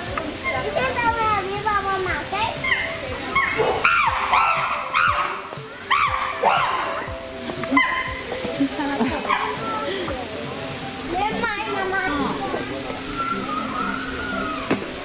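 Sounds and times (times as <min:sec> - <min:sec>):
chimpanzees screaming: 0:00.3 - 0:00.8, 0:02.5 - 0:10.3, 0:12.1 - 0:15.0.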